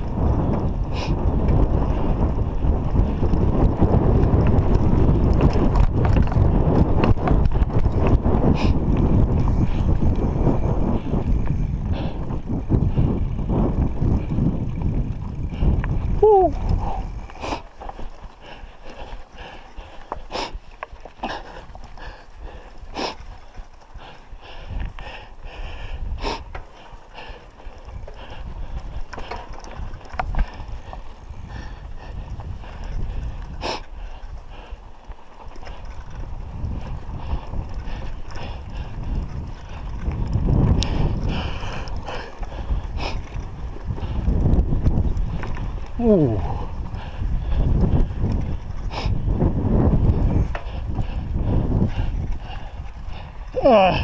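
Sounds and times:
wind rumbling on microphone: 0.0s - 54.0s
bike knocks and rattles: 1.4s - 18.1s.

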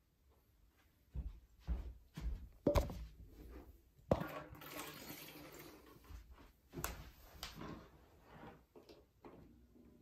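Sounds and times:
glass bottle knocking on plastic: 2.7s - 3.0s.

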